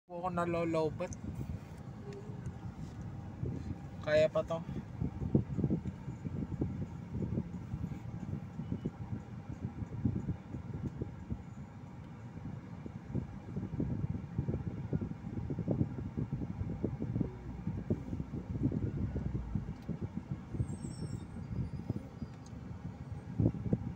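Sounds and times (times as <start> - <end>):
car cabin rumble: 0.1 - 23.9.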